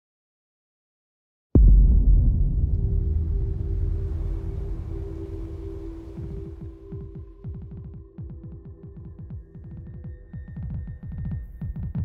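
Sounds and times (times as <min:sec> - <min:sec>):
deep rumbling drone: 0:01.6 - 0:08.1.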